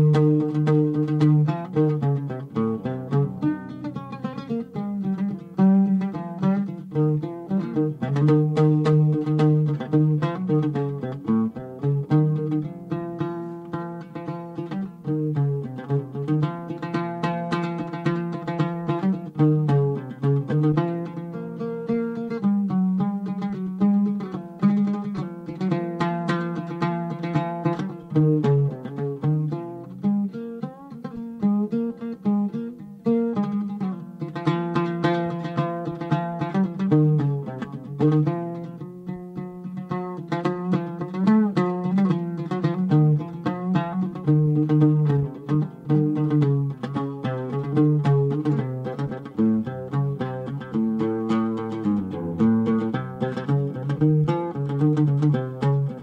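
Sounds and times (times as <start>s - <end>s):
solo oud melody: 0.0s - 56.0s.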